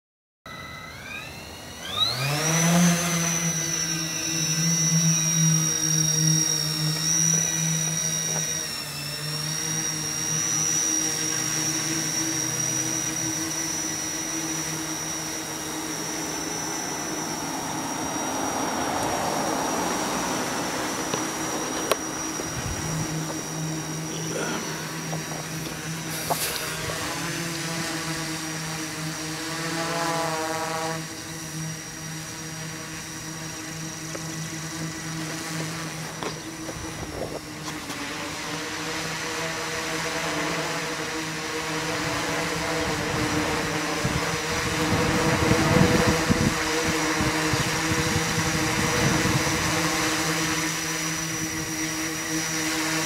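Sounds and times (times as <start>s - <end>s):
drone motors whining and buzzing: 0.5s - 53.0s.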